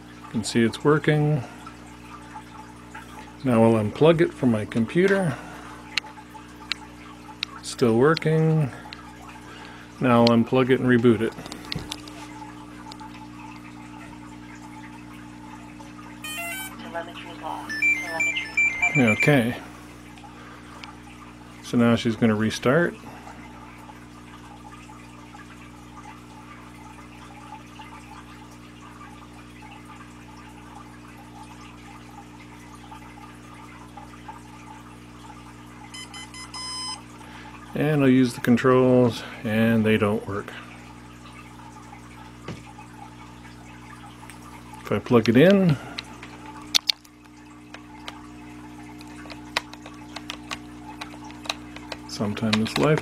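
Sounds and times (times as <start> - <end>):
low electrical hum: 0.0 - 53.0
short high electronic beeps: 16.2 - 16.9, 17.6 - 19.6, 35.9 - 37.0.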